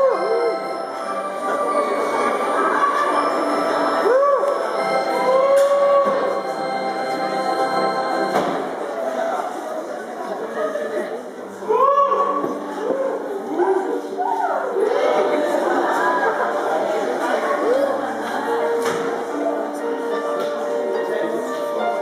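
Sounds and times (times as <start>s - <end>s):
keyboard playing organ chords: 0.0s - 9.0s.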